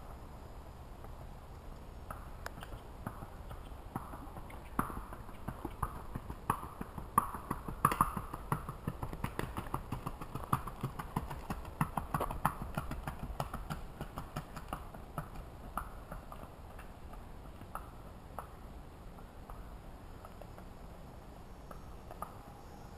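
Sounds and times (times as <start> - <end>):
horse hoofbeats on pavement: 2.1 - 18.6.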